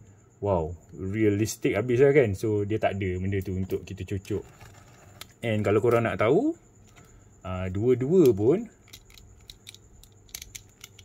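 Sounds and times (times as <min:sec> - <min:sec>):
plastic joints clicking: 0:08.2 - 0:11.0.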